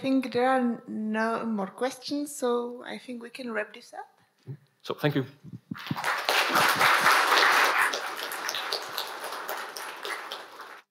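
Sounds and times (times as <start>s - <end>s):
audience applause: 5.8s - 10.9s.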